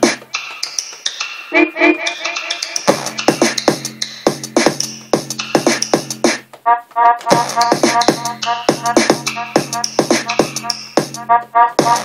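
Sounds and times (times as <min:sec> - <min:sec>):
electronic music: 0:00.0 - 0:12.0
synth notes: 0:01.5 - 0:04.0, 0:06.6 - 0:12.0
bass: 0:02.9 - 0:12.0
drum hits: 0:07.2 - 0:11.2, 0:11.8 - 0:12.0.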